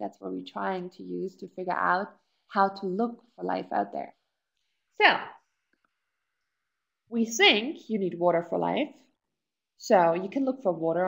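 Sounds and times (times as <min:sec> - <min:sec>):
woman speaking: 0:00.0 - 0:04.1, 0:05.0 - 0:05.4, 0:07.1 - 0:09.0, 0:09.8 - 0:11.0.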